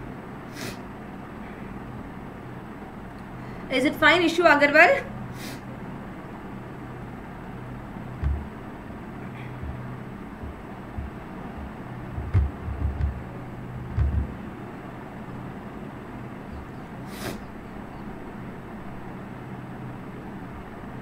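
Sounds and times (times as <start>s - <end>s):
low electrical hum: 0.0s - 21.0s
soft low thumps: 8.2s - 14.4s
background hiss: 16.8s - 17.6s.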